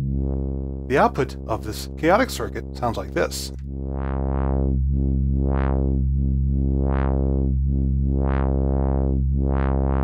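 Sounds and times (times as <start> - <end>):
low sawtooth synthesizer drone: 0.0 - 10.0.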